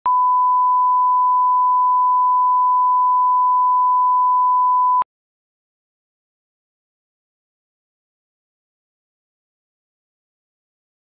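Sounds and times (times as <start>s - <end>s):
steady test tone beep: 0.0s - 5.0s.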